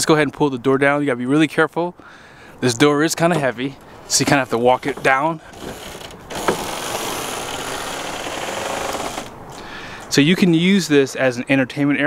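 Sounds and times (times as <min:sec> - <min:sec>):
ramp door rattling: 0:03.4 - 0:09.3.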